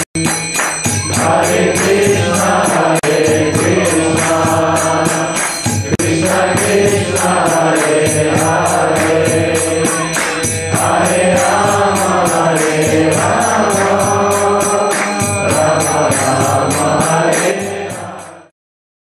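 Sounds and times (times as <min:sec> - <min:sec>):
hand cymbals striking: 0:00.2 - 0:18.5
man chanting into a microphone: 0:01.2 - 0:18.5.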